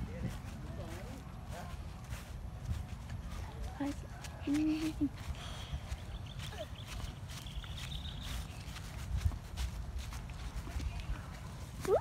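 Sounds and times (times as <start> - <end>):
footsteps on grass: 0.0 - 12.0
wind rumble on microphone: 0.0 - 12.0.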